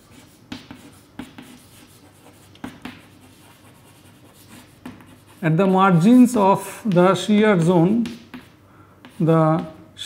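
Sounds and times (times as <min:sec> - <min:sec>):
chalk scratching on blackboard: 0:00.0 - 0:06.4
chalk tapping on board: 0:00.0 - 0:07.1, 0:07.9 - 0:09.8.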